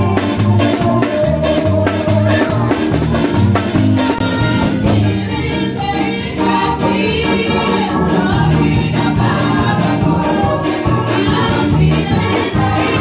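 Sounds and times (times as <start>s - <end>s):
gospel choir singing with accompaniment: 0.0s - 13.0s.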